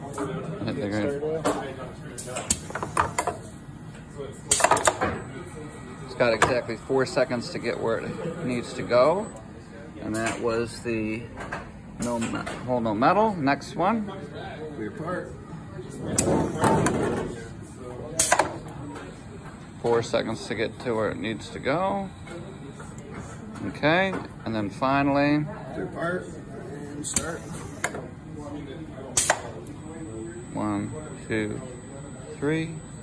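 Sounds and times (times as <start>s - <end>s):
conveyor belt running: 2.1s - 11.1s, 15.5s - 33.0s.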